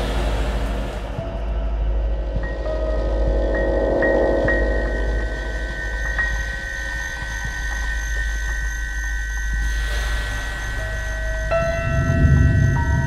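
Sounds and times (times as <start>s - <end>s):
low rumble: 0.0s - 7.4s, 10.1s - 13.0s
hiss: 9.6s - 11.5s.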